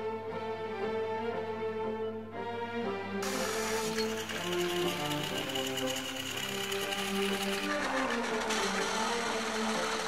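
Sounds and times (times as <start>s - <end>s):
background music: 0.0s - 10.0s
toy train motors whirring: 3.2s - 10.0s.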